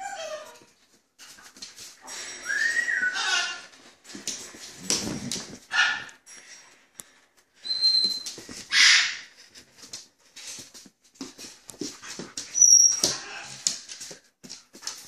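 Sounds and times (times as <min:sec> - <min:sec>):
dog whining and yipping: 0:00.0 - 0:00.7.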